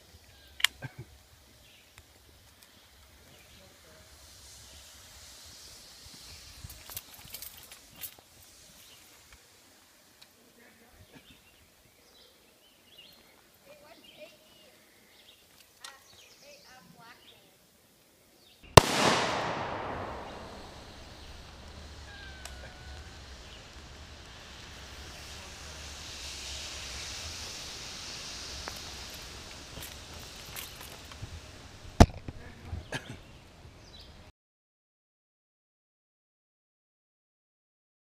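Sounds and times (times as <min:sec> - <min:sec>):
battery venting hiss: 0:00.0 - 0:34.2
rifle shots: 0:18.8 - 0:21.3.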